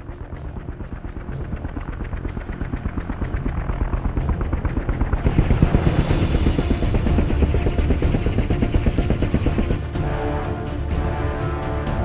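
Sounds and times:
turbine rumble: 0.0 - 10.5
helicopter rotor chop: 0.0 - 11.1.

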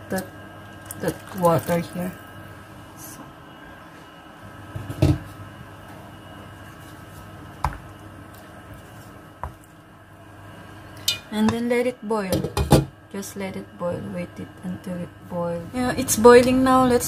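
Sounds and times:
steady hum: 0.0 - 17.0
cookware clunks and knocks: 12.4 - 12.9.

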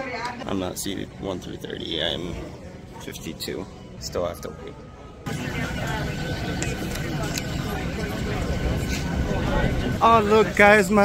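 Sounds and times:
passengers chattering: 0.0 - 11.0.

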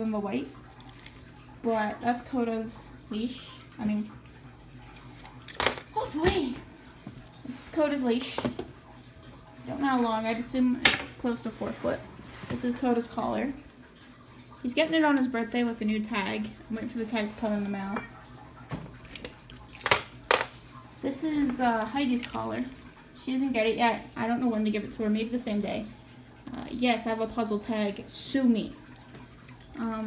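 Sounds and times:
leash hardware clinking: 18.9 - 20.4, 21.7 - 22.8.

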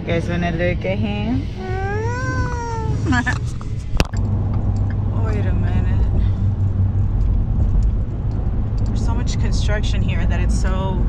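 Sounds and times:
car cabin engine and road noise: 0.0 - 11.0.

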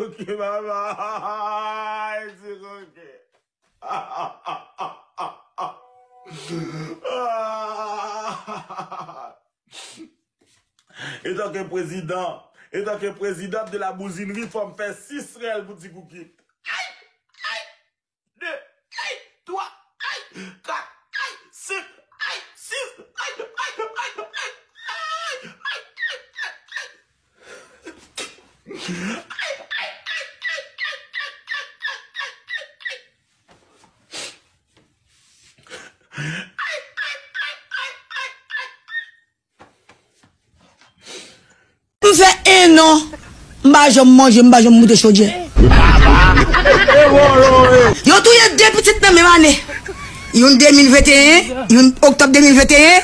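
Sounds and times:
man laughing hard: 0.0 - 2.0, 3.8 - 9.4, 36.2 - 39.0, 45.3 - 48.4, 49.2 - 50.8.

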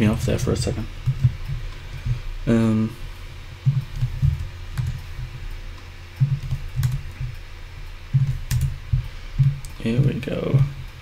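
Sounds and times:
steady low hum: 0.0 - 11.0
computer keyboard typing: 3.6 - 5.5, 6.2 - 7.4, 8.1 - 9.8.

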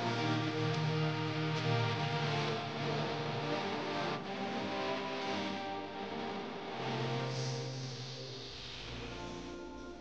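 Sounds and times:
slow song with held notes: 0.0 - 10.0.

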